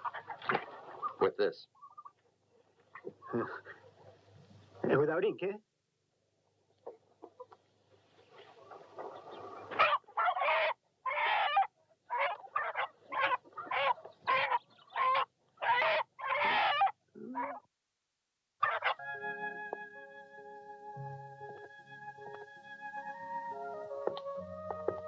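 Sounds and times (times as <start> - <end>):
chicken squawking and clucking: 0.0 - 4.8, 6.8 - 17.7, 18.6 - 19.0.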